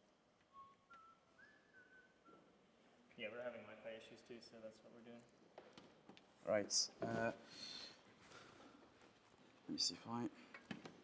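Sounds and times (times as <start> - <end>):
person whistling softly: 0.4 - 2.6.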